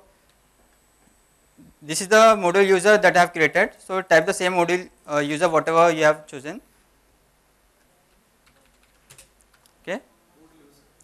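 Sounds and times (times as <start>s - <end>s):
computer keyboard keystrokes: 8.4s - 9.8s.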